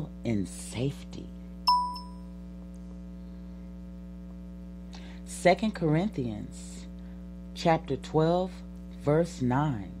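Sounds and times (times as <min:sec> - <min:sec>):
electrical mains hum: 0:00.0 - 0:10.0
ding ringing: 0:01.7 - 0:02.3.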